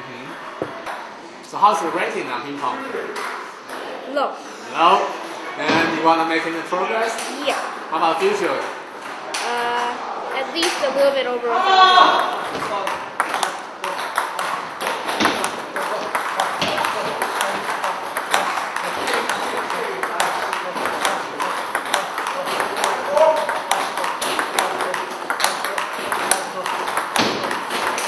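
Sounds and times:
table tennis balls clicking: 12.2s - 28.0s.

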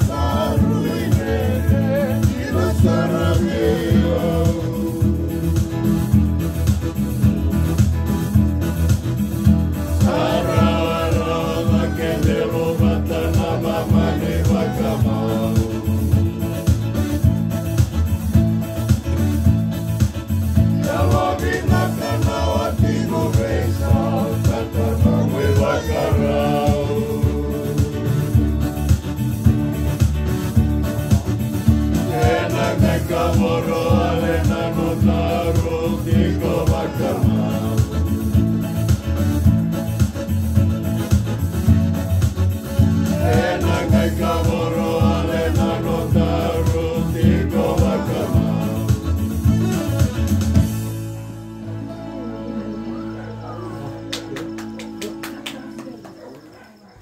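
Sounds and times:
man singing: 0.0s - 5.7s, 10.1s - 16.7s, 20.9s - 28.4s, 32.1s - 38.4s, 43.1s - 49.3s
strummed acoustic guitar: 0.0s - 56.6s
electronic keyboard: 0.0s - 57.0s.

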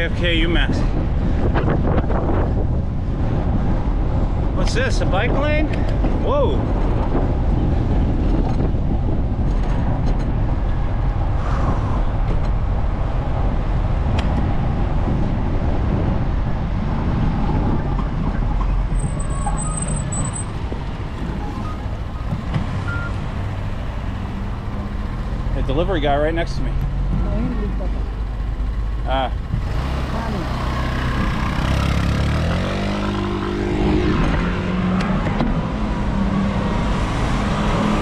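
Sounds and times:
passing road traffic: 0.0s - 38.0s.

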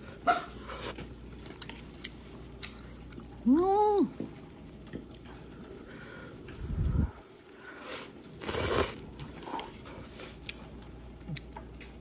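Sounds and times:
person chewing food: 0.0s - 12.0s.

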